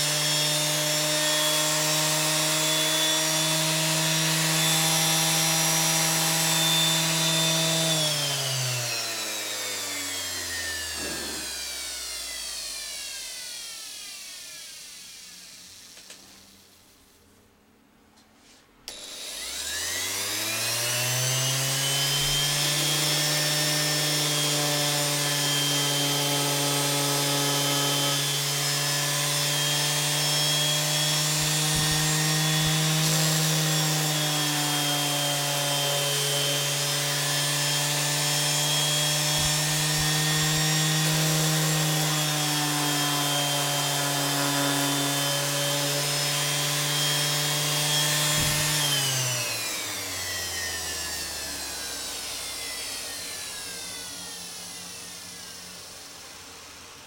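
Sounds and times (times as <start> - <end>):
electric sander motor running: 0.0 - 16.5, 18.9 - 57.0
sander winding down whine: 0.0 - 16.8, 18.9 - 57.0.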